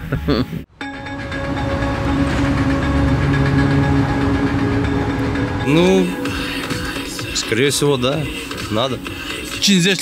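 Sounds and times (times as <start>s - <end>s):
drone of held tones: 0.8s - 7.3s.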